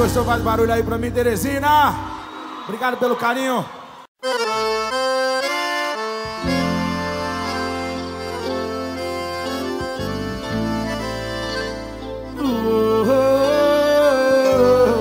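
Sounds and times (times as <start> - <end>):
low bass notes: 0.0 - 1.9, 6.2 - 15.0
accordion melody: 4.2 - 15.0.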